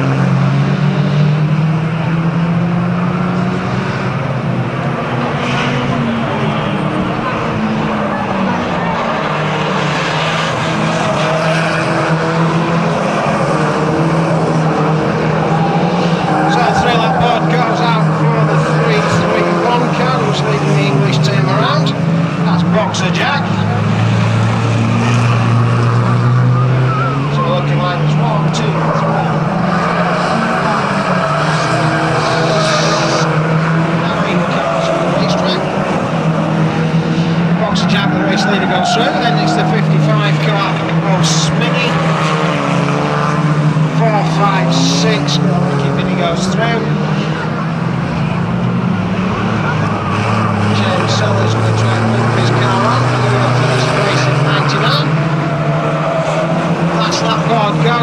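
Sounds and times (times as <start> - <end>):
racing car engines revving: 0.0 - 58.0.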